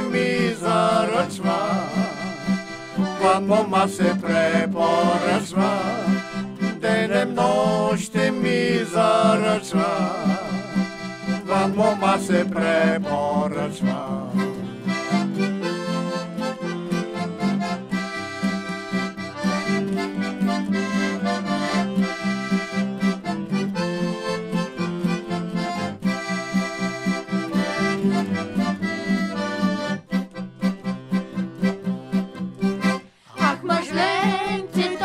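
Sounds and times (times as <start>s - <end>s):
accordion folk dance tune: 0.0s - 35.0s
guitar accompaniment: 0.0s - 35.0s.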